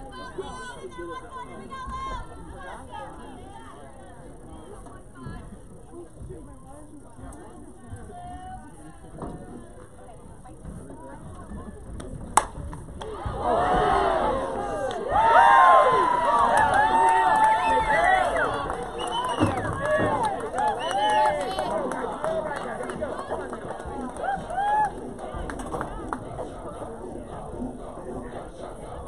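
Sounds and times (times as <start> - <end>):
crowd shouting and cheering: 13.0 - 29.0.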